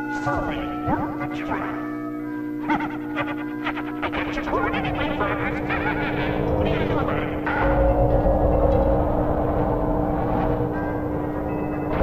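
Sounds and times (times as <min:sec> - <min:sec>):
cartoon music: 0:00.0 - 0:02.0, 0:02.6 - 0:07.7
steady hum: 0:00.0 - 0:12.0.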